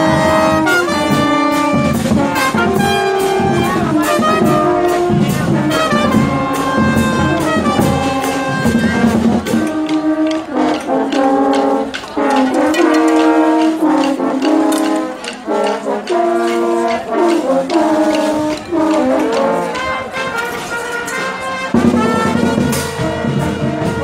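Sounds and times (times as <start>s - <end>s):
marching band brass chords: 0.0s - 24.0s
percussion strokes: 0.0s - 24.0s.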